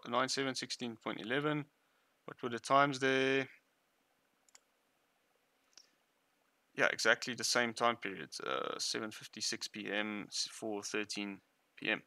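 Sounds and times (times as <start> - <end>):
faint computer mouse clicks: 4.4 - 4.7.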